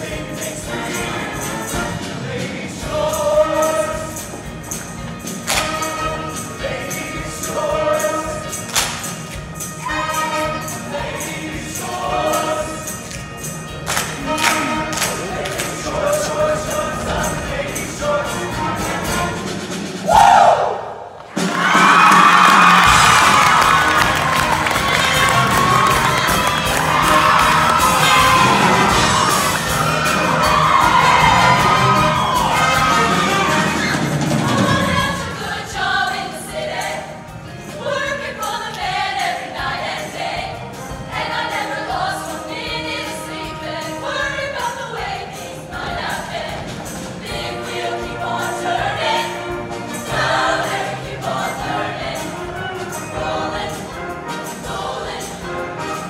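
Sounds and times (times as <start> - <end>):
band playing: 0.0 - 56.0
audience cheering and screaming: 20.0 - 35.2
women singing: 34.4 - 56.0.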